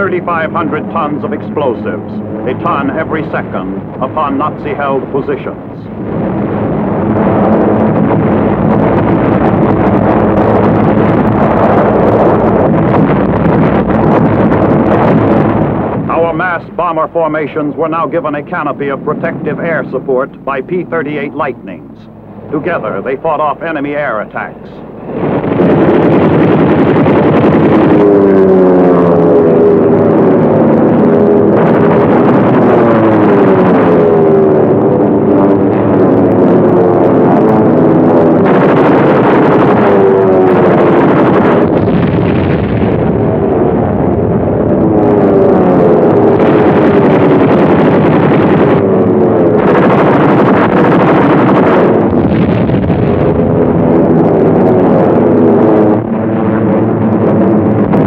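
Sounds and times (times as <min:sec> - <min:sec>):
piston-engine warplanes droning: 0:00.0 - 0:58.0.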